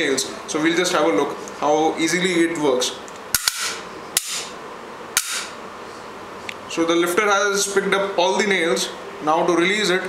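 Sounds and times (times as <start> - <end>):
nails snapping onto magnet: 5.2 - 5.5.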